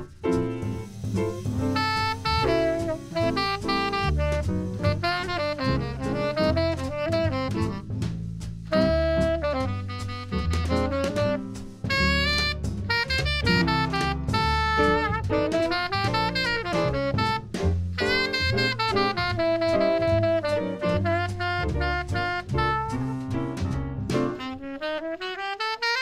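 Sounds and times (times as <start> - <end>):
upright bass: 0.0 - 24.6
drums: 0.0 - 26.0
piano: 0.0 - 26.0
saxophone melody: 1.1 - 7.9, 8.7 - 23.2, 24.2 - 26.0.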